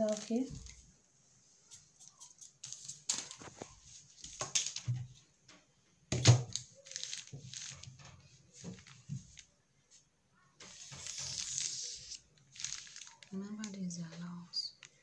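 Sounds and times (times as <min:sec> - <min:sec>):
paper rustling: 0:00.0 - 0:00.8, 0:01.6 - 0:04.8, 0:06.7 - 0:09.5, 0:10.6 - 0:13.8
ruler scraping on paper: 0:10.6 - 0:13.1.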